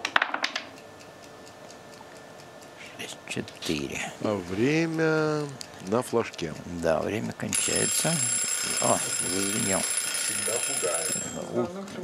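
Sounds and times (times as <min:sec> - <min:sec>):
high-pitched electronic warning tone: 0:07.6 - 0:11.7.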